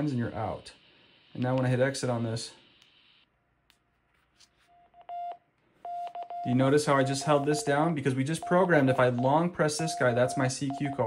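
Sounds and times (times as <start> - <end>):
steady radio beep: 5.1 - 11.0.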